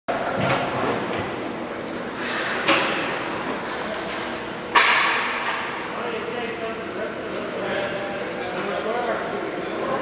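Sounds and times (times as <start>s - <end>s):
murmur of arena noise: 0.1s - 10.0s.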